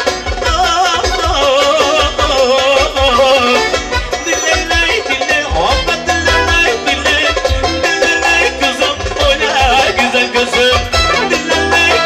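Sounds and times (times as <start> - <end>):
electronic keyboard band music: 0.0 - 12.0
person singing with vibrato: 0.4 - 12.0.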